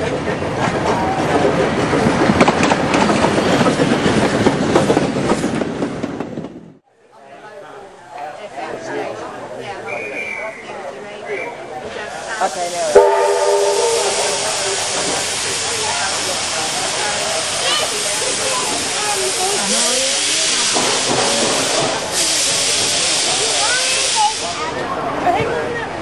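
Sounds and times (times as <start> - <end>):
escaping steam hissing: 12.1 - 24.8
steam locomotive whistle: 12.9 - 15.4.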